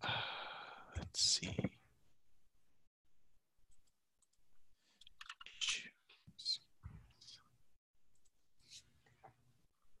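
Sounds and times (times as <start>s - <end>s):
faint keyboard typing: 3.7s - 5.9s.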